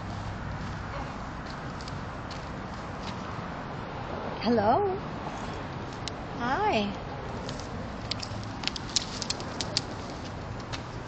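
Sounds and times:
bird beak and claws clicking on plastic: 8.1s - 9.9s.

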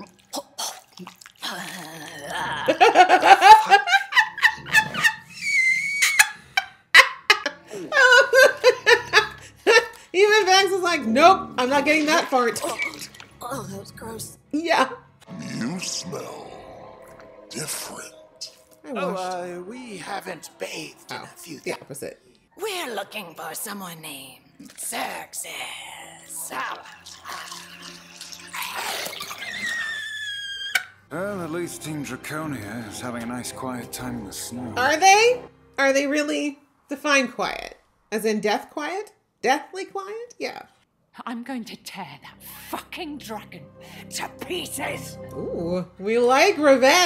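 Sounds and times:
woman laughing: 2.5s - 10.1s
high-pitched tone: 15.3s - 21.2s.

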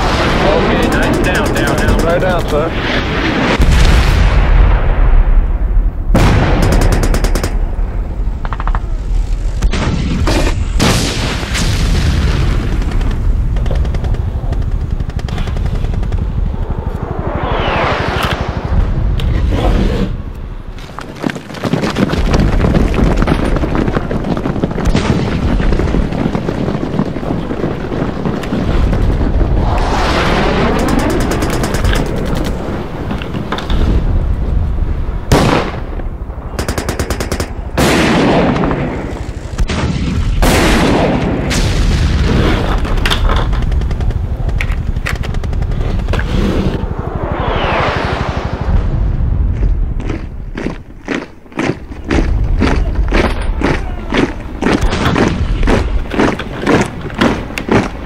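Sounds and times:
machine-gun fire: 0.0s - 2.5s, 6.2s - 7.7s, 30.6s - 32.4s, 36.6s - 39.0s
gunshots: 0.0s - 4.2s, 6.1s - 7.8s, 29.8s - 32.6s
explosions: 0.0s - 20.8s, 22.0s - 50.6s
sweeping sound rising and falling: 16.5s - 20.2s, 46.7s - 49.5s.

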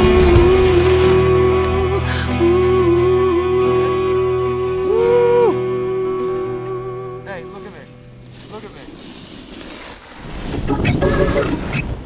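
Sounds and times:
snowboard running over snow: 8.2s - 10.8s.

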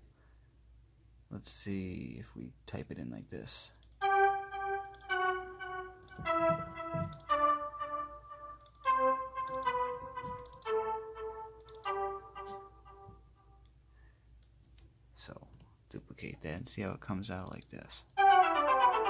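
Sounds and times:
sampled string notes: 4.0s - 13.5s, 18.2s - 19.0s
faint mouse clicks: 17.4s - 18.2s.

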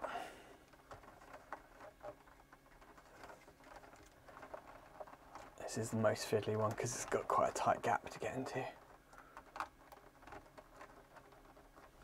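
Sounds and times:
fingers handling wiring: 0.0s - 12.0s.

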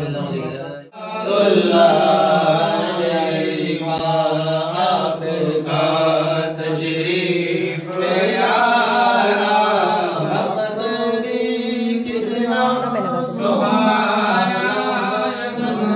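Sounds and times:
men chanting: 0.0s - 15.9s.

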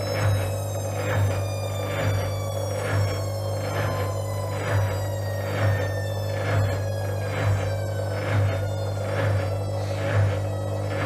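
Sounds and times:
high motor whine: 0.0s - 11.0s
washing machine drum turning: 0.0s - 11.0s.

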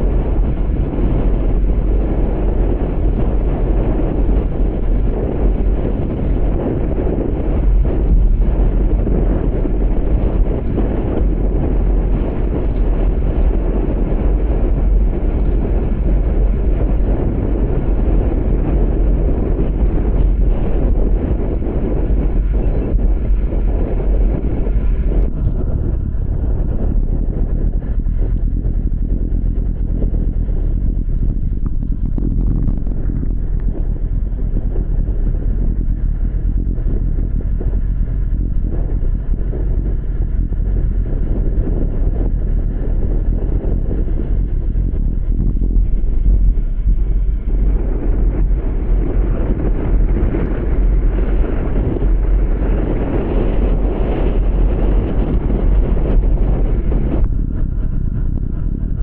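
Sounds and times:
wind buffeting microphone: 0.0s - 59.0s.

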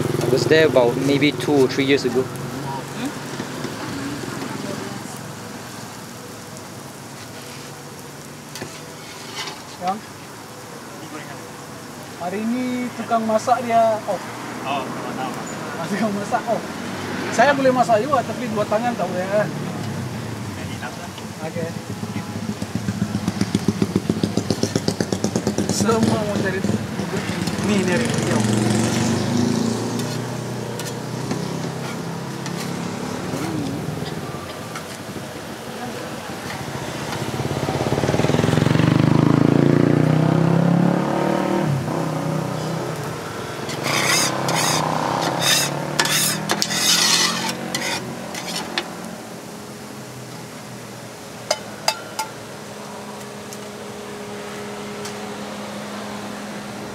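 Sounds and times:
food sizzling on griddle: 0.0s - 40.3s, 41.6s - 55.9s
metal spatula scraping griddle: 8.5s - 9.9s, 30.0s - 35.0s, 43.6s - 48.9s
metal spatula clattering on griddle: 43.7s - 48.9s, 51.5s - 52.4s.

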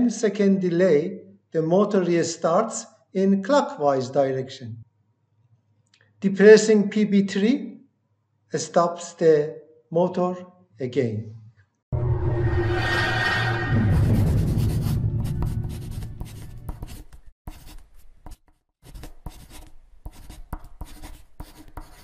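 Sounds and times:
marker writing strokes: 14.1s - 22.0s.

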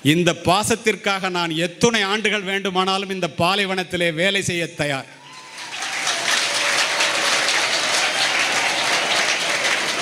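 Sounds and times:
audience applauding: 5.3s - 10.0s.

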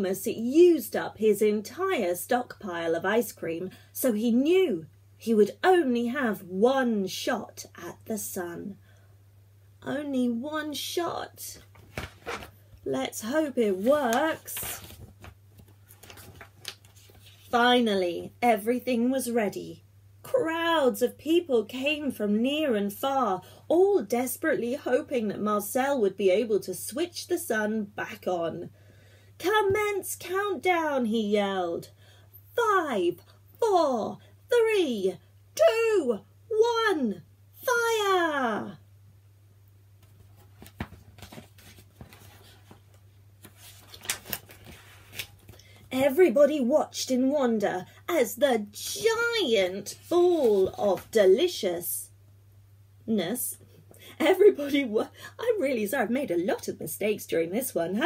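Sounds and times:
low steady hum: 0.0s - 58.0s
hands rustling book pages: 11.6s - 17.6s, 40.0s - 45.9s, 50.4s - 51.2s.

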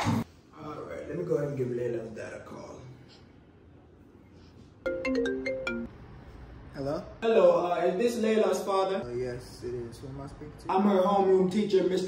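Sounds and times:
phone ringtone melody: 4.9s - 5.9s.

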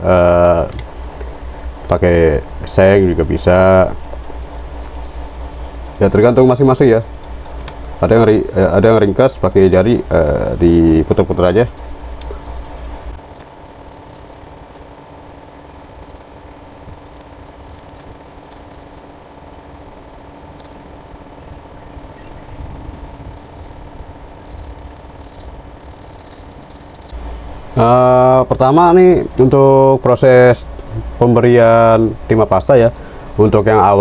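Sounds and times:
low electrical hum: 0.0s - 34.0s.

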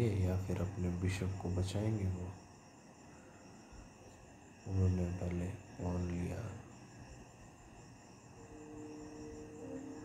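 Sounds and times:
man talking: 0.0s - 2.4s, 4.7s - 6.6s
high-pitched tones: 8.4s - 10.0s.

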